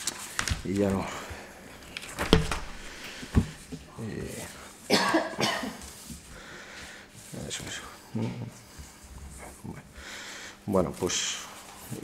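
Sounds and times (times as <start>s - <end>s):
person coughing: 4.9s - 5.8s.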